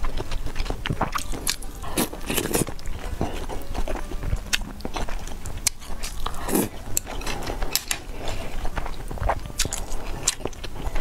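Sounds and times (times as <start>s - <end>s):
biting and chewing food: 0.0s - 11.0s.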